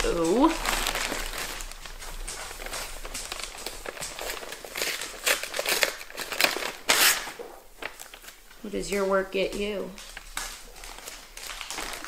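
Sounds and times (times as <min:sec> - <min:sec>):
plastic and paper rustling: 0:00.0 - 0:12.0.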